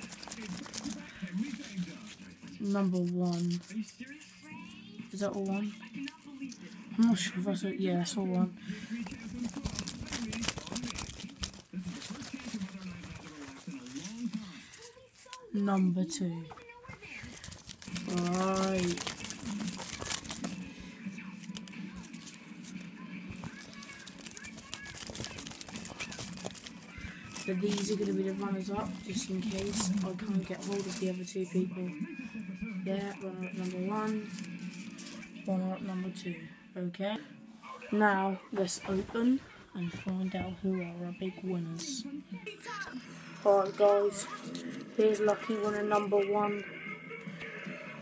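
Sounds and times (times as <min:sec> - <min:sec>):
paper slips rustling: 0:00.0 - 0:04.4, 0:05.1 - 0:07.2, 0:08.6 - 0:15.7, 0:16.9 - 0:35.5, 0:43.5 - 0:46.5.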